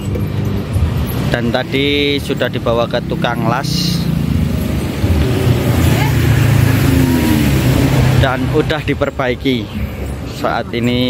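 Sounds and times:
vehicle engine running: 0.0s - 10.3s.

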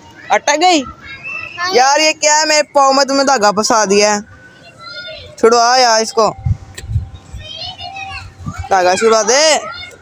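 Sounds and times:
young voices talking: 0.0s - 10.0s.

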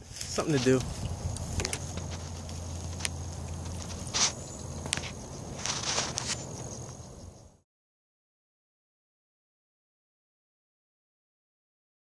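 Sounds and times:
footsteps in grass: 0.0s - 7.1s
steady low hum: 0.0s - 7.6s
sharp clicks and scrapes: 0.2s - 6.7s.

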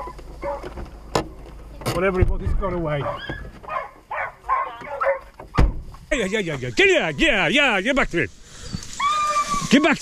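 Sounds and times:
hounds barking: 0.0s - 0.7s, 3.0s - 5.4s.

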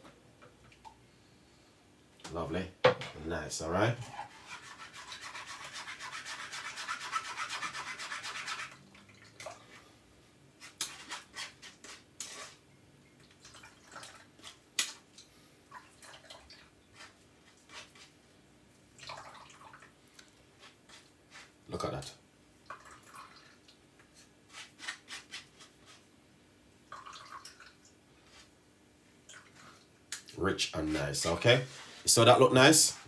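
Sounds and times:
spoon scraping metal mesh strainer: 10.6s - 12.6s.

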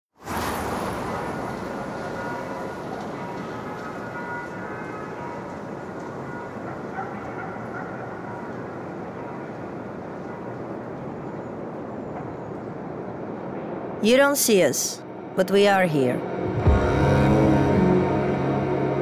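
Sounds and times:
distant traffic hum: 0.2s - 16.2s
faint dog barks: 6.9s - 8.6s.

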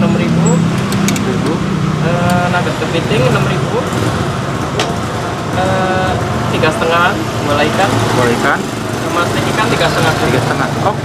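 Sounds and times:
roadside traffic: 0.0s - 11.0s
vehicle engine humming: 0.0s - 11.0s
people talking: 1.2s - 3.9s, 5.6s - 11.0s.

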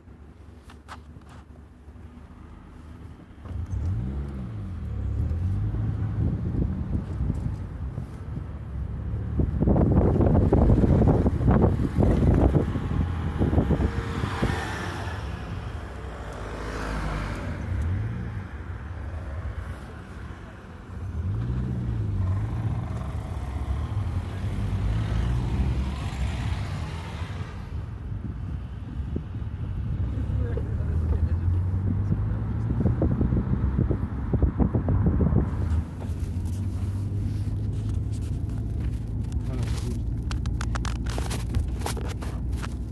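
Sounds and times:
car engine and road rumble: 0.0s - 42.9s.

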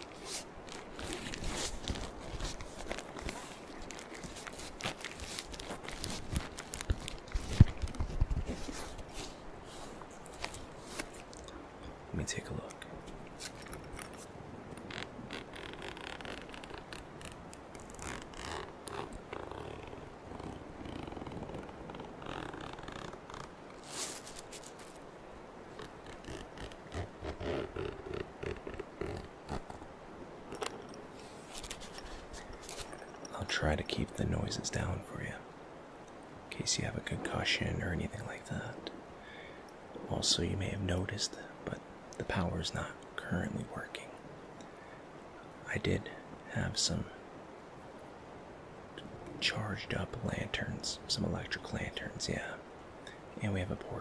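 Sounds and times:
hands rubbing and tapping on case: 0.0s - 9.3s
steady rain: 0.0s - 13.7s, 14.8s - 54.0s.

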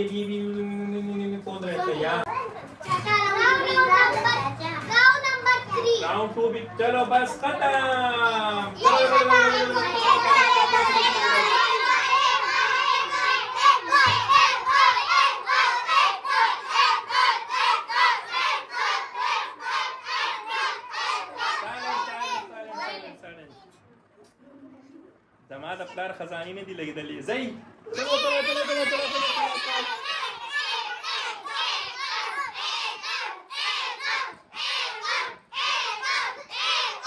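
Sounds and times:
children talking and calling out: 1.7s - 6.8s, 8.6s - 25.3s, 27.7s - 37.0s.

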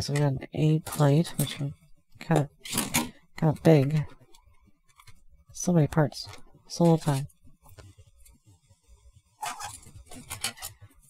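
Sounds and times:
plastic rustle and clatter: 9.4s - 11.0s.

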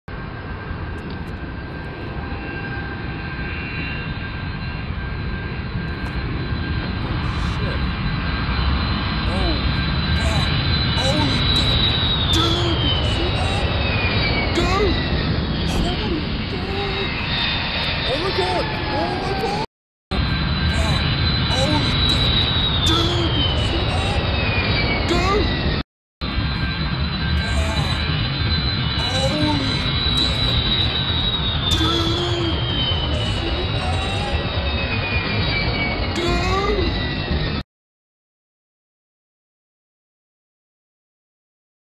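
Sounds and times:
jet engines rumbling and whining: 0.1s - 37.6s.

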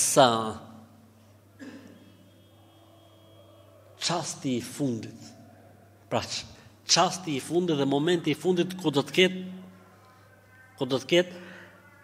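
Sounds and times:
faint high whine: 0.6s - 5.9s.

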